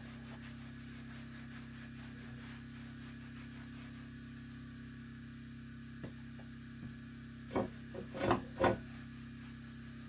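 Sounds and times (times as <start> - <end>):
steady low hum: 0.0 - 10.0
hand scraping rubs: 0.1 - 4.2, 7.5 - 10.0.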